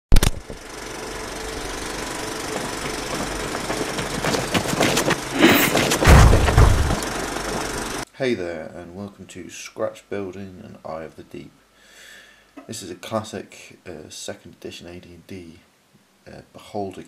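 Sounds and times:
mechanical rattle: 0.2 - 8.0
sharp hit: 2.9 - 7.6
deep booms: 6.0 - 7.1.

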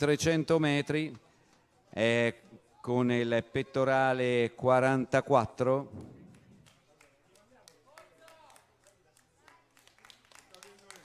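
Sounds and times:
faint scattered claps: 5.9 - 11.0.

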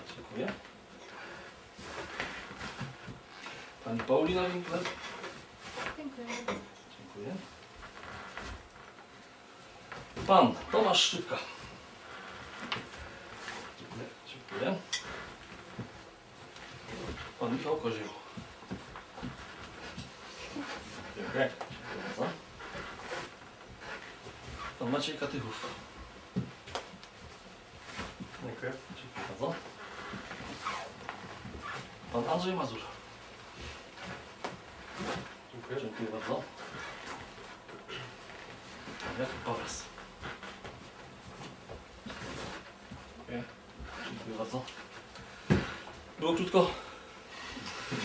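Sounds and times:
rustling of hands and clothing: 0.0 - 48.0
man speaking: 46.2 - 46.9.

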